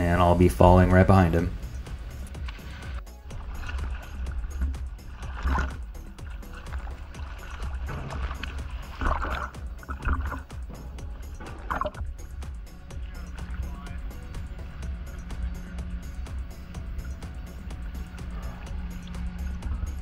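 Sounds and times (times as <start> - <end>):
music with steady beat: 1.2 - 20.0
sea water splashing: 1.5 - 20.0.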